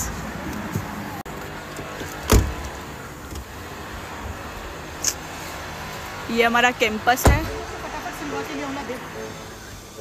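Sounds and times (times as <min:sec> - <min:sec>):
street noise: 0:00.0 - 0:10.0
car door slamming: 0:02.0 - 0:03.5, 0:07.2 - 0:07.6.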